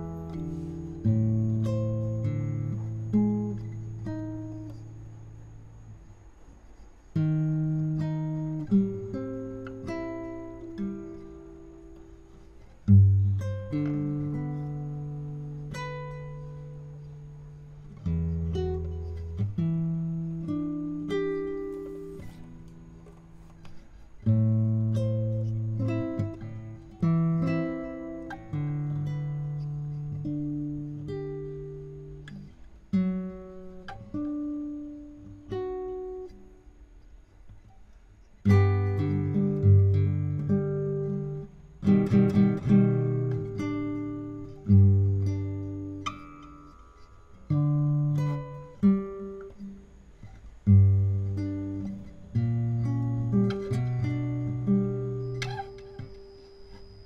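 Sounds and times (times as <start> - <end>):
classical guitar fingerstyle melody: 0.0 - 57.0.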